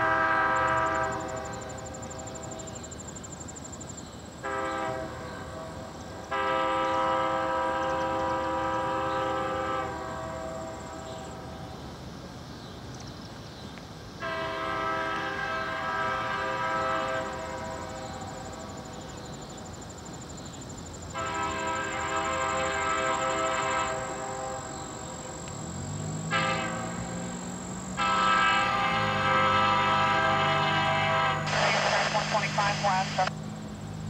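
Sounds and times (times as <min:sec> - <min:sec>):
locomotive horn blasts: 0:00.0 - 0:02.0, 0:04.4 - 0:11.3, 0:14.2 - 0:18.7, 0:21.1 - 0:33.3
diesel locomotive rumble: 0:14.1 - 0:34.0.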